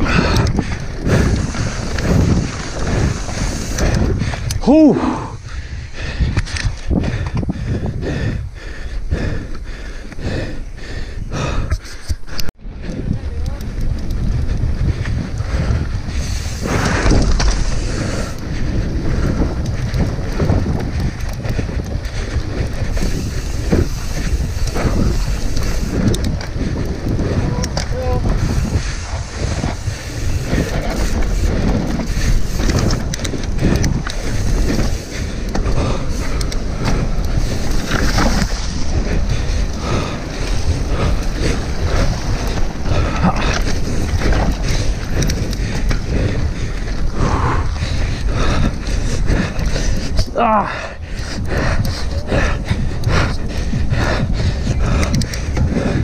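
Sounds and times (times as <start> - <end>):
bike clattering over bumps: 0.0 - 4.8, 12.8 - 56.0
wind rushing over microphone: 0.0 - 56.0.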